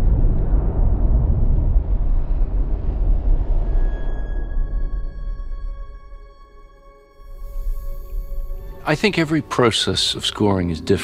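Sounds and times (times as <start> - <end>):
explosion fireball rumble: 0.0 - 5.5.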